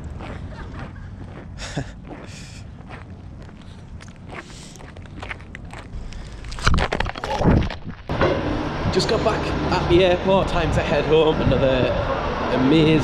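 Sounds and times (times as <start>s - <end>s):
footsteps on icy path: 0.0s - 8.1s
outdoor background noise: 0.0s - 13.0s.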